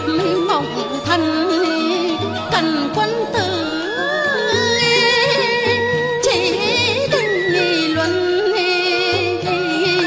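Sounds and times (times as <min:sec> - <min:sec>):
woman singing folk opera: 0:00.0 - 0:10.0.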